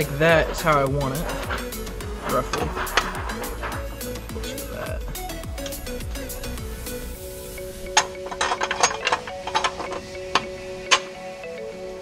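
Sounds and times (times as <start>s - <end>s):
steel plate scraping sheet metal: 0.0s - 7.0s, 7.7s - 11.1s
background music with held tones: 0.0s - 12.0s.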